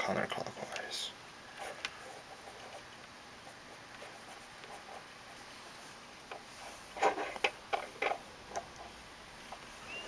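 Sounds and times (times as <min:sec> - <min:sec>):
light clicks and taps: 0:00.7 - 0:00.9.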